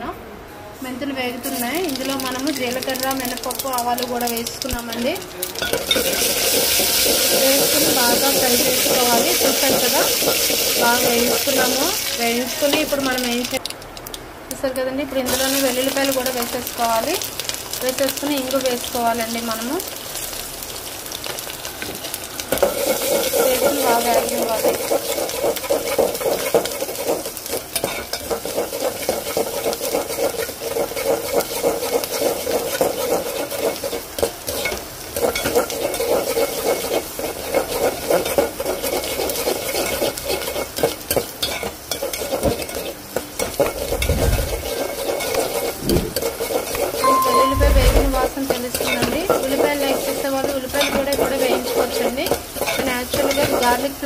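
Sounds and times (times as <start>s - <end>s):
garlic sizzling in hot oil: 1.1s - 54.0s.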